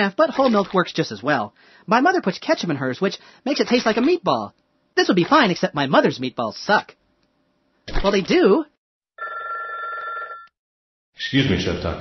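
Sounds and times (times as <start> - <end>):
telephone ringing: 9.2 - 10.6.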